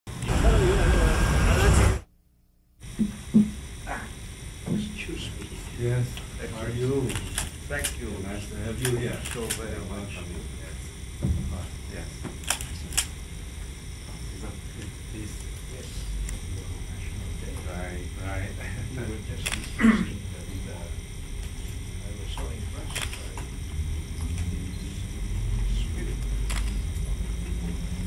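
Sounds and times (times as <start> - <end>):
steady low hum: 0.1 - 28.0
voices talking: 0.2 - 2.1, 14.0 - 28.0
camera shutter clicks: 12.4 - 13.1, 19.4 - 19.8, 22.9 - 23.3, 26.5 - 26.8.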